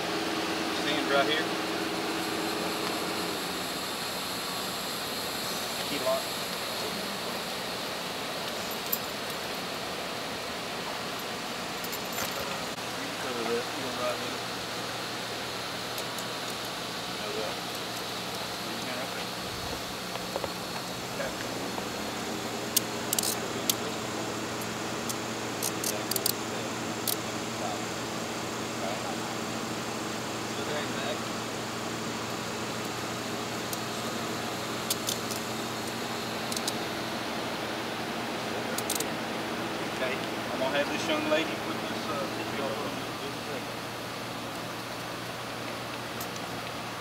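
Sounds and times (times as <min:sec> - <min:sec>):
steady low hum: 0:00.0 - 0:47.0
handcuffs and keys jingling: 0:11.8 - 0:12.5, 0:23.1 - 0:23.4.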